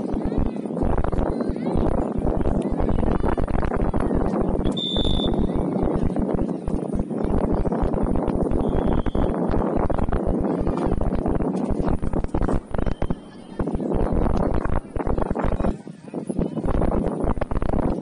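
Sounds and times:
distant murmur of voices: 0.0s - 18.0s
wind buffeting microphone: 0.0s - 18.0s
high-pitched tone: 4.6s - 5.6s.

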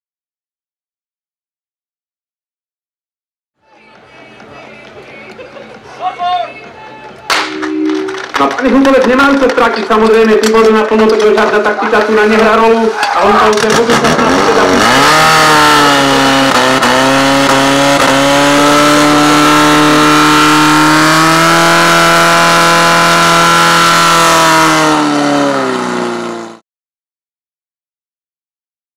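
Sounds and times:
background music: 3.6s - 9.1s
indistinct voices: 3.6s - 15.1s
fire pump engine at high revs: 13.3s - 26.6s.

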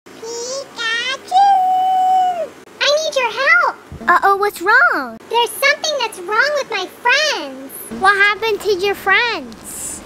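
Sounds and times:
high-pitched cartoon voice: 0.1s - 5.2s.

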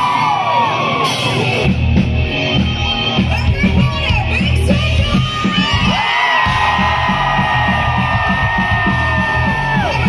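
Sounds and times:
crowd whooping and cheering: 0.0s - 1.7s, 5.0s - 10.0s
live rock band playing: 0.0s - 10.0s.

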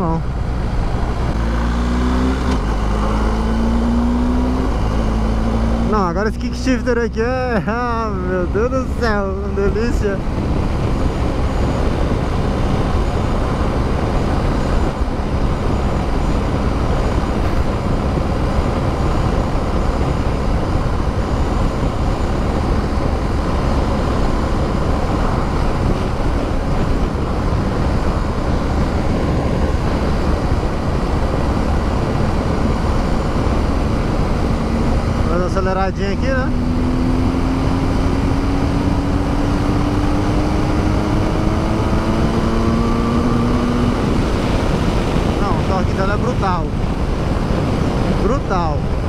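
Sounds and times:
motorcycle engine running steadily: 0.0s - 49.0s
wind rushing: 7.9s - 49.0s.

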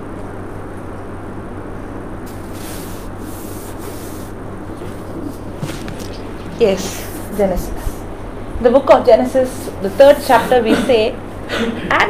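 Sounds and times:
low room hum: 0.0s - 12.0s
paper rustling: 2.3s - 7.4s.

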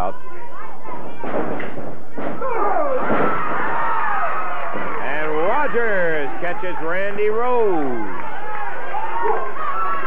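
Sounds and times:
crowd yelling: 0.0s - 10.0s
bodies thudding on wrestling ring: 0.9s - 5.0s.

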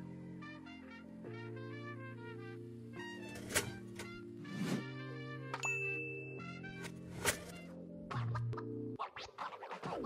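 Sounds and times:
background music with held notes: 0.0s - 9.2s
high bell ding: 5.6s - 6.5s.

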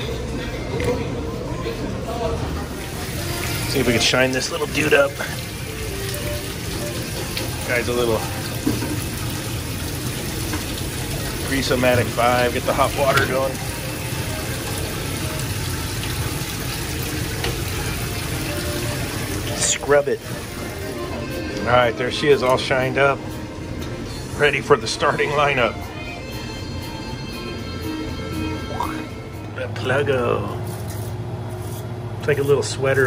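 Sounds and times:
background music: 0.0s - 30.6s
tap water running into sink: 2.8s - 21.7s.

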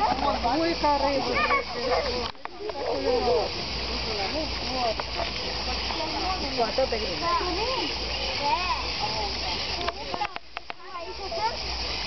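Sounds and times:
indistinct voices talking: 0.0s - 12.0s
steady hiss: 0.0s - 12.0s.

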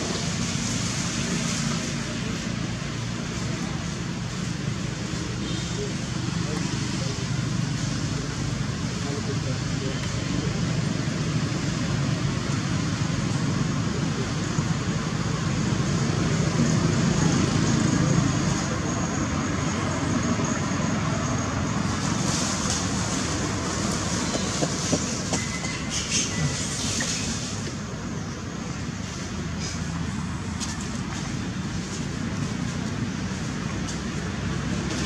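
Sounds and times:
rushing outdoor background noise: 0.0s - 35.0s.

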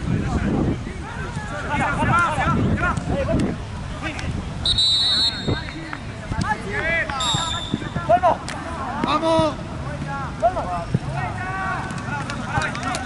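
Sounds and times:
referee's whistle blasts: 4.6s - 5.8s, 7.2s - 8.0s
players calling out: 4.7s - 13.0s.

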